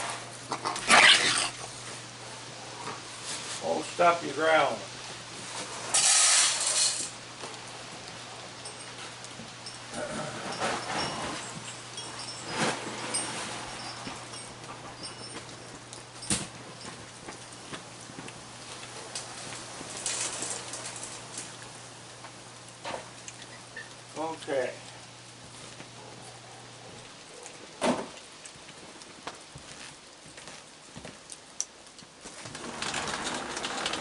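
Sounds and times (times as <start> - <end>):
hissing rustle: 0.0 - 34.0
raccoons crunching seeds: 0.0 - 34.0.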